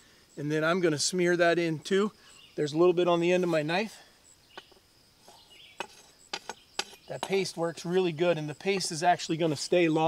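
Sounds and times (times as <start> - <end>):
machete scraping tree bark: 5.2 - 9.8.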